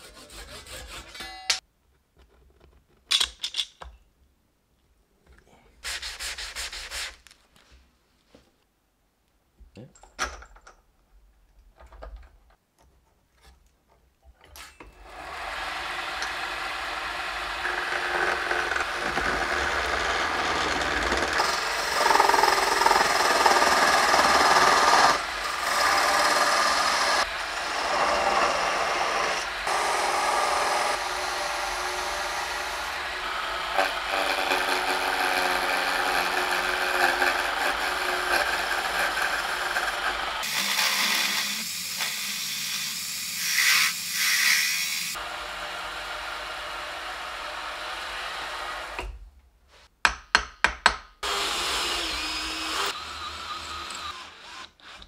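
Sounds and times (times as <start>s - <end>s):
wood lathe chisel scraping wood: 0.0s - 1.2s, 15.0s - 45.0s.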